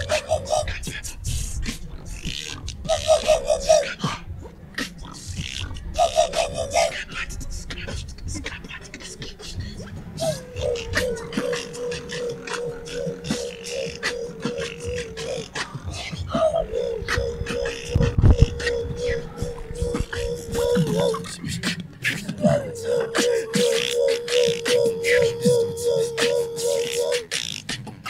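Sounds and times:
beatboxing: 0.0s - 28.0s
held vocal note: 9.2s - 27.6s.

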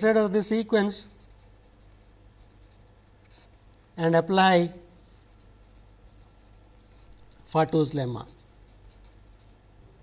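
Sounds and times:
low steady hum: 0.0s - 10.0s
marker pen scratching on paper: 1.0s - 3.6s, 5.0s - 9.6s.

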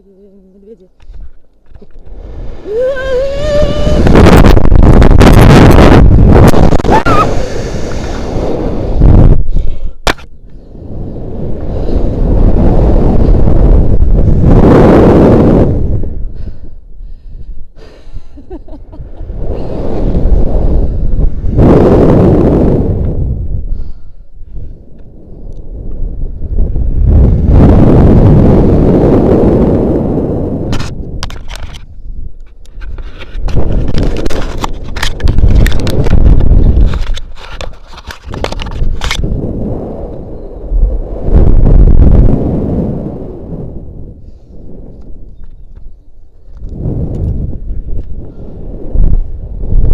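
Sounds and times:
wind rushing over microphone: 0.0s - 49.9s.

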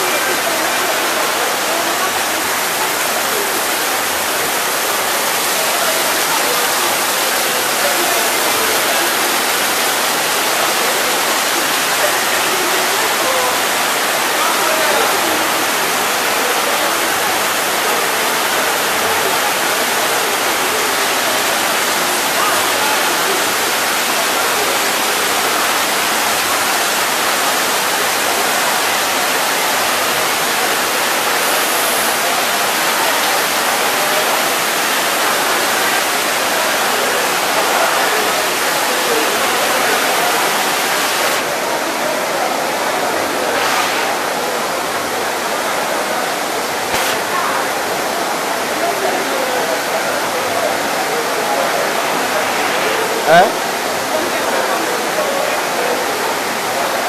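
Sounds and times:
heavy rain hissing: 0.0s - 57.0s.

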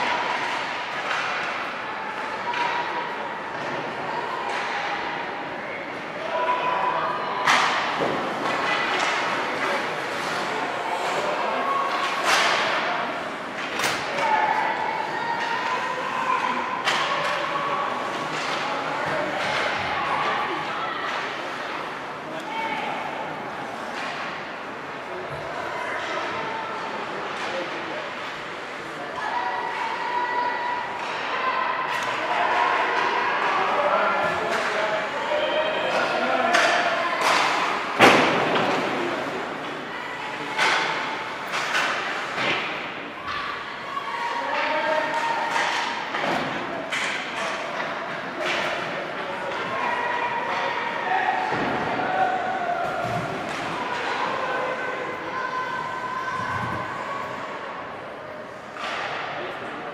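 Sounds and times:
hockey stick crack: 0.0s - 2.8s
hockey puck impact echoing: 0.0s - 5.1s, 36.0s - 43.6s.

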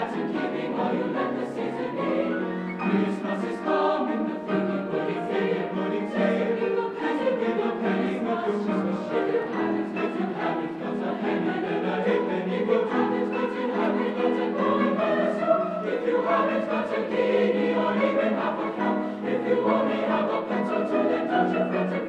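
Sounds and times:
choir singing: 0.0s - 22.0s.

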